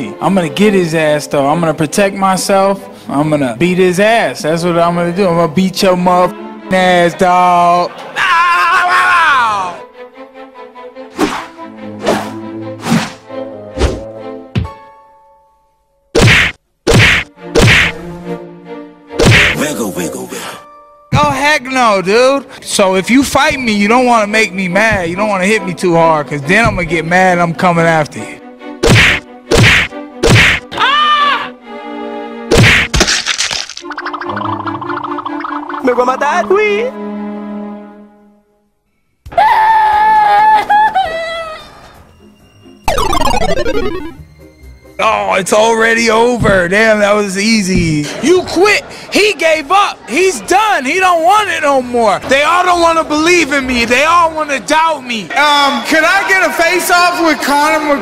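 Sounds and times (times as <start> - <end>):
high held cartoon scream: 8.2 - 9.7, 30.7 - 31.5, 39.3 - 40.6
punch impacts: 16.2 - 18.0, 19.2 - 19.6, 28.8 - 30.7, 32.5 - 33.3
comic descending slide effect: 42.9 - 44.3.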